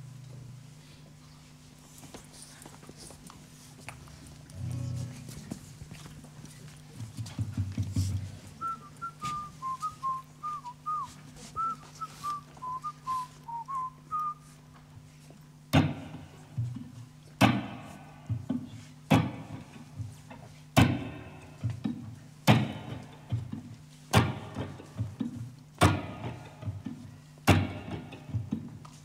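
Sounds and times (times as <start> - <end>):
low electrical hum: 0.0 - 29.0
person whistling: 8.6 - 14.6.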